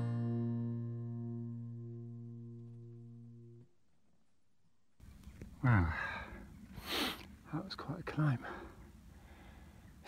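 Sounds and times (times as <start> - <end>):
guitar chord ringing: 0.0 - 3.6.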